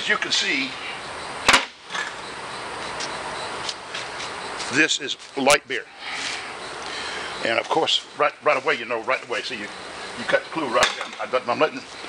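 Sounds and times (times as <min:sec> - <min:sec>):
steady background hiss: 0:00.0 - 0:12.0
sharp knock: 0:01.5 - 0:01.8.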